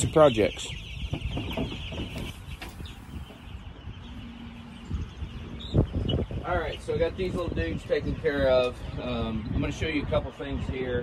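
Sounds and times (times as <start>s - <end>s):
chicks peeping: 0.0s - 11.0s.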